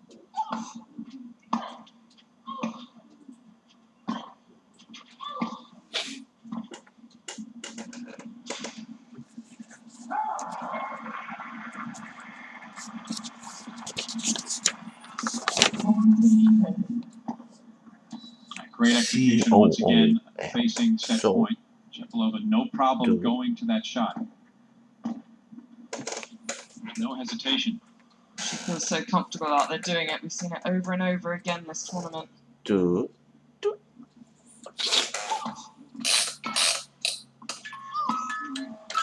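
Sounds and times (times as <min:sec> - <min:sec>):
steady low hum: 0:00.0 - 0:34.7.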